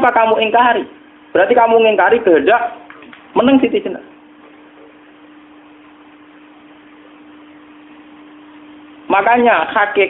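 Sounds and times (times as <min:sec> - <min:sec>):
constant hum tone: 0:00.0 - 0:10.0.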